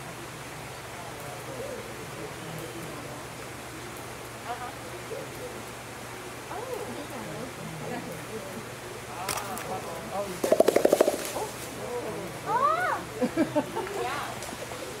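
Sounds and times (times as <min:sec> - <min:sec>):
gorilla beating its chest: 0:10.4 - 0:11.7.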